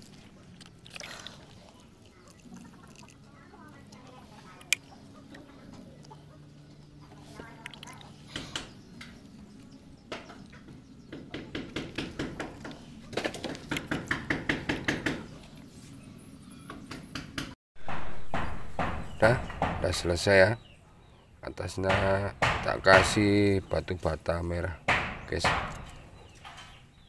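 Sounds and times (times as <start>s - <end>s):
chicken clucking: 1.7s - 11.6s.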